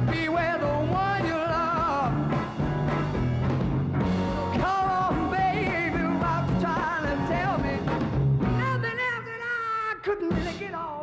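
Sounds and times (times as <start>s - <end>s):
rock band playing: 0.0s - 9.2s.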